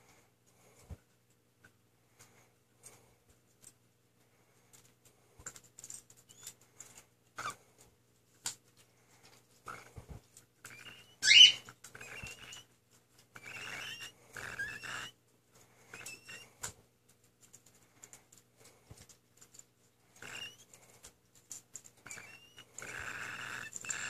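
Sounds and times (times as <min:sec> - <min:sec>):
chick beak clicks and scrapes: 0:04.6 - 0:24.0
cockatiel chick harsh squawk: 0:07.4 - 0:07.6, 0:10.7 - 0:12.6, 0:13.4 - 0:15.2, 0:15.9 - 0:16.5, 0:20.2 - 0:20.6, 0:22.0 - 0:24.0
raspy chirps: 0:10.6 - 0:12.7, 0:13.4 - 0:15.1, 0:15.9 - 0:16.5, 0:20.2 - 0:20.7, 0:22.0 - 0:24.0.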